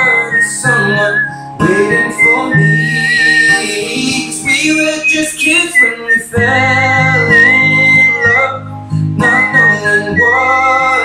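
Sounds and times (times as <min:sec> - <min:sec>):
acoustic guitar backing track: 0:00.0 - 0:11.0
man whistling a melody: 0:00.0 - 0:11.0.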